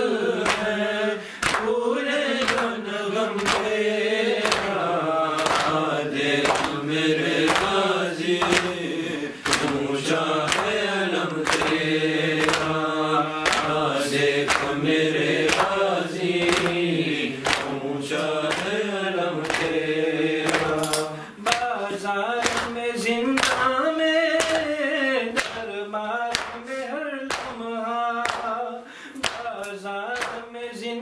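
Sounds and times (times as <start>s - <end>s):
men chanting a lament: 0.0s - 31.0s.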